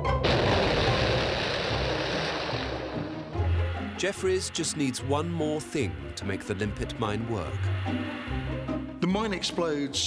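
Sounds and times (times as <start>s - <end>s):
music with low sustained notes: 0.0s - 10.0s
explosion rushing blast: 0.2s - 3.6s.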